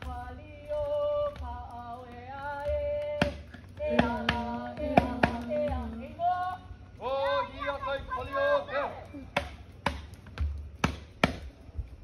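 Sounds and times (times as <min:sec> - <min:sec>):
voices chanting: 0:00.2 - 0:09.4.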